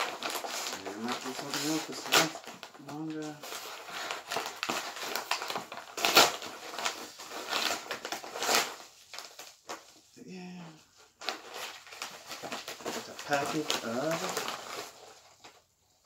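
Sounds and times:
paper mailer ripping and crinkling: 0:00.0 - 0:10.0, 0:11.2 - 0:15.7.

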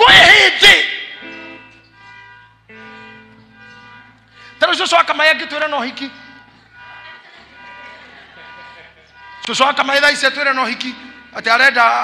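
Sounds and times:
soft sustained chords: 0:01.2 - 0:11.5.

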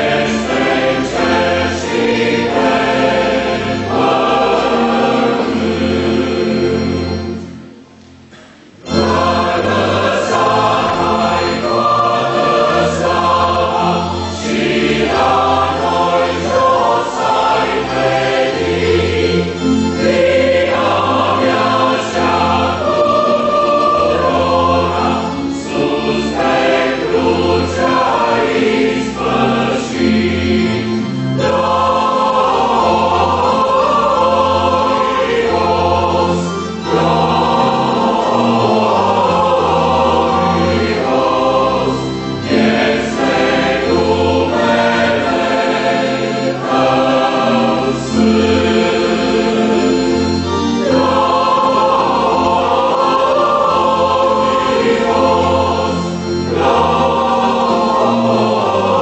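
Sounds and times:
mixed choir singing a hymn: 0:00.0 - 0:59.0.

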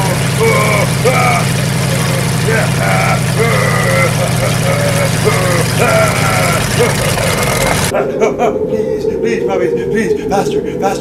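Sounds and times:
snow vehicle engine running: 0:00.0 - 0:07.9
high wavering vocal cries: 0:00.0 - 0:11.0.

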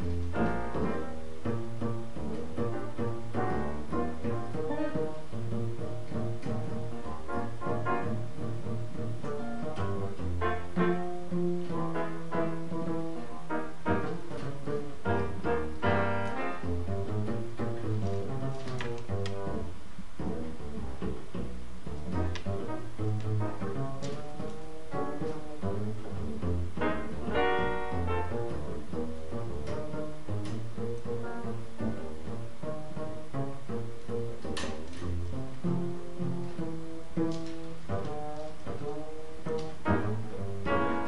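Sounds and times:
piano: 0:00.0 - 0:41.0
plucked upright double bass: 0:00.0 - 0:41.0.

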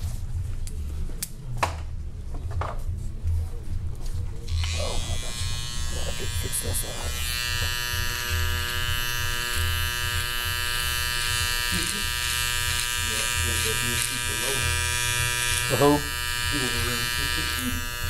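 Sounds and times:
electric hair trimmer buzzing: 0:04.5 - 0:18.0.

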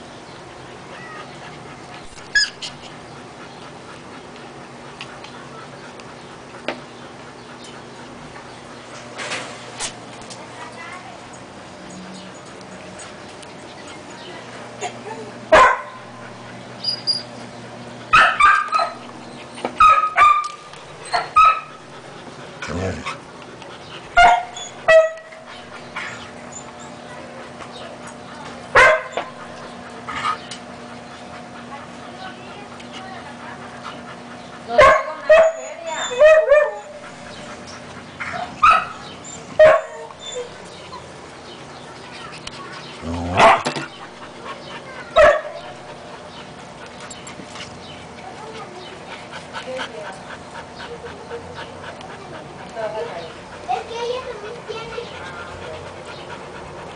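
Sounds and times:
puppies yipping and whimpering: 0:00.9 - 0:03.4, 0:16.2 - 0:17.5, 0:24.3 - 0:27.0, 0:34.1 - 0:47.2.

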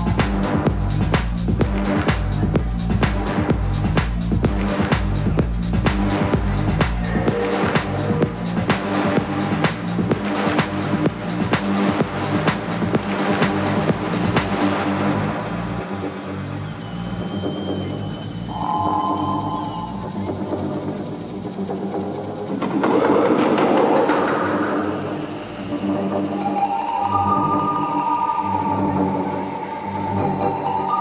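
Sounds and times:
electronic dance beat: 0:00.0 - 0:31.0
held synth chords: 0:00.0 - 0:31.0
high synth notes: 0:18.3 - 0:21.1, 0:24.2 - 0:31.0.

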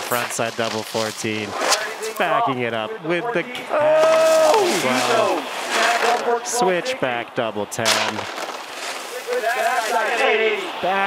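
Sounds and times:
commentator wordless exclamation: 0:00.0 - 0:01.6, 0:02.2 - 0:08.2
broadcast hiss: 0:00.0 - 0:11.0.

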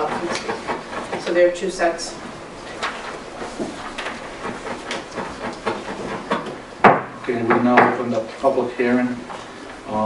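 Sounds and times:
paper sheets shuffling: 0:02.6 - 0:06.4.

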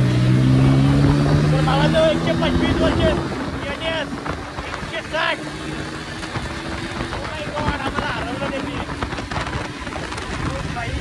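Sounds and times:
motorcycle engine: 0:00.0 - 0:11.0
wind rushing over microphone: 0:00.0 - 0:11.0.

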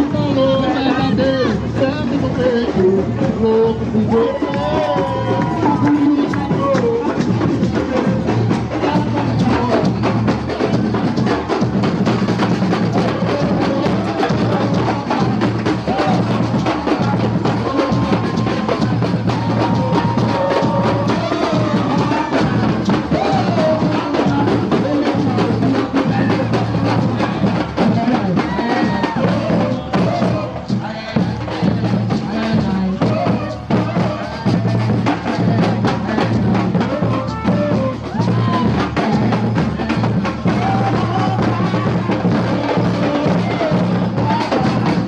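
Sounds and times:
bass drums playing rhythm: 0:00.0 - 0:45.0.

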